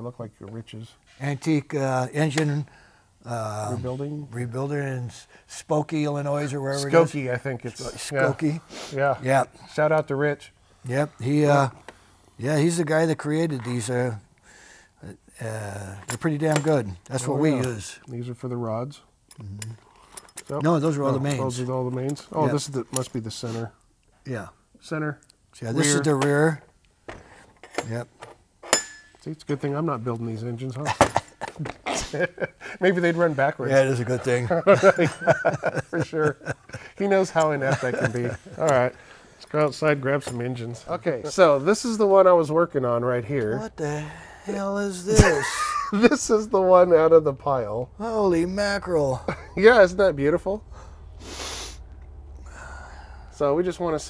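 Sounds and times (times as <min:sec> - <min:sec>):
metallic clink of part set down: 0:27.2 - 0:29.2
breathy puff of breath: 0:50.7 - 0:53.4.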